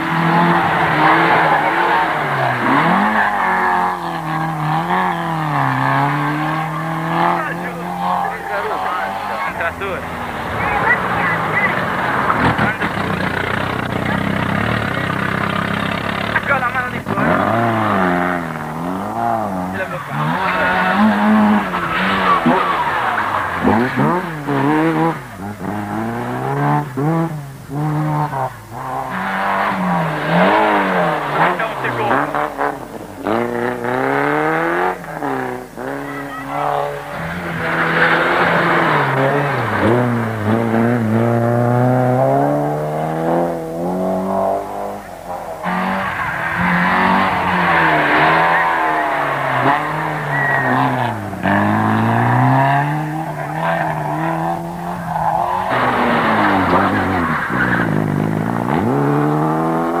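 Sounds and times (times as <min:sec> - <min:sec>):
rally car engines revving: 0:00.0 - 1:00.0.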